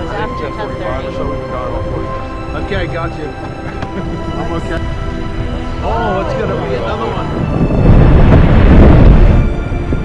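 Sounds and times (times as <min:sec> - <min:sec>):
background music: 0:00.0 - 0:10.0
deep rumble of glacier calving: 0:04.1 - 0:10.0.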